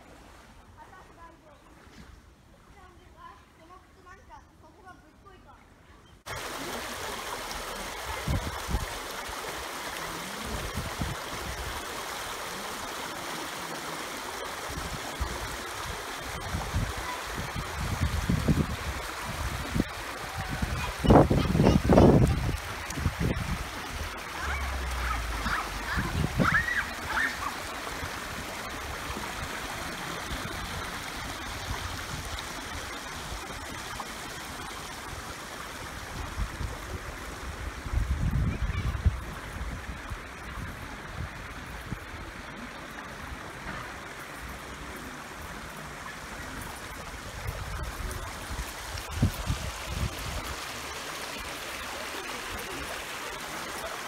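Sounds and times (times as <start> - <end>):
stream babbling over rocks: 6.3 - 54.0.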